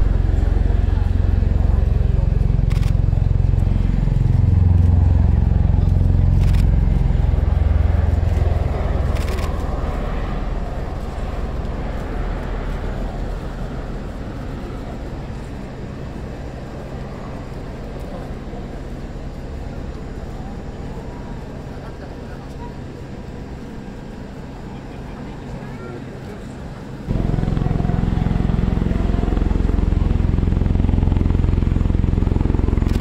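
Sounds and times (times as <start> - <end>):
aircraft rotor drone: 0.0 - 33.0.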